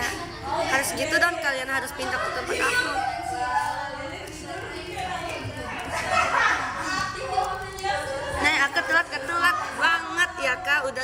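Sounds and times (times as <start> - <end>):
girl talking: 0.0 - 10.7.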